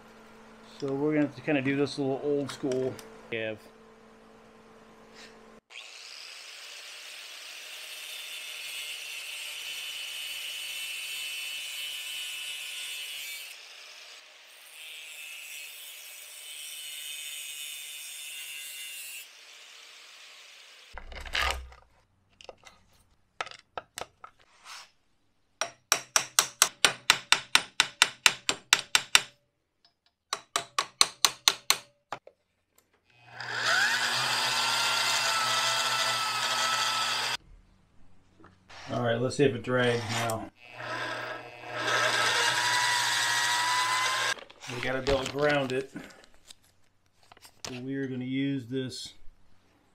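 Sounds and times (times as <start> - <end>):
angle grinder grinding: 5.2 - 21.0, 33.1 - 37.4, 39.7 - 46.3
electric gear motor whining: 33.2 - 37.4, 40.1 - 44.4.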